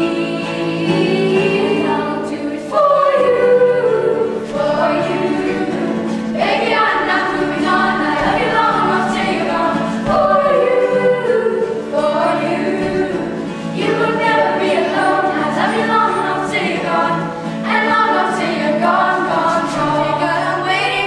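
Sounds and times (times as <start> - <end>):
children's choir singing harmony: 0.0 - 21.0.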